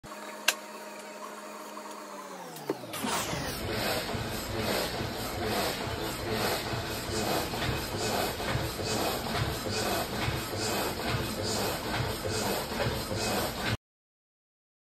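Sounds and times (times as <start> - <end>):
steady blower machine noise: 0.0 - 13.8.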